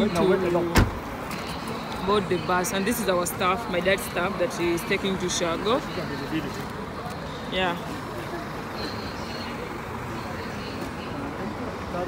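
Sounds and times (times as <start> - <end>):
crowd voices: 0.0 - 12.0
traffic noise: 0.0 - 12.0.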